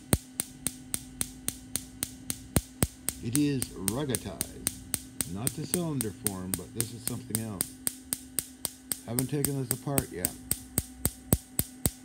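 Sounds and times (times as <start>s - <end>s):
rapid regular clicking: 0.0s - 12.0s
steady low hum: 0.0s - 12.0s.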